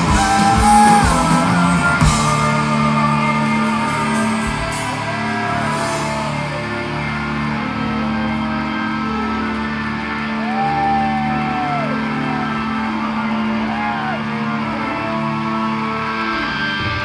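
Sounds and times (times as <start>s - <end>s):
rock band playing live: 0.0s - 17.0s.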